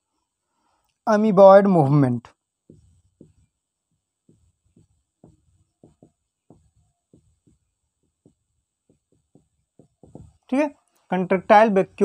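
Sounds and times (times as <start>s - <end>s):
marker writing on whiteboard: 2.3s - 12.0s.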